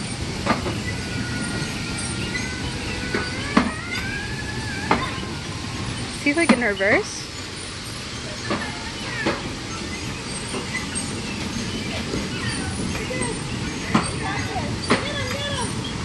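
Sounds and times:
bumper cars rumbling hum: 0.0s - 16.0s
faint voices: 0.0s - 16.0s
sharp knocks of bumper cars: 0.0s - 16.0s.

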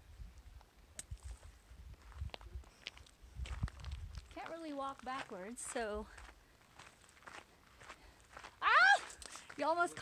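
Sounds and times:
footsteps on gravel: 1.2s - 10.0s
woman yelping: 8.6s - 9.2s.

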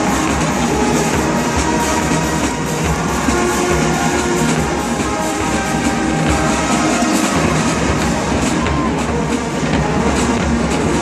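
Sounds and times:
drumline steady beat: 0.0s - 11.0s
marching band brass chords: 0.0s - 11.0s.

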